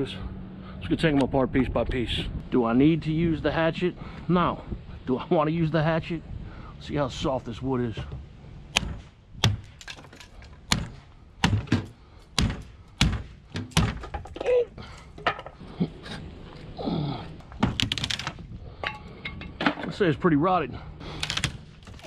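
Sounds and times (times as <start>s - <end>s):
hatchet chopping wood: 8.7s - 15.2s, 17.6s - 18.4s, 21.0s - 22.0s
wood breaking off: 8.7s - 15.6s, 17.3s - 20.0s, 21.0s - 22.0s.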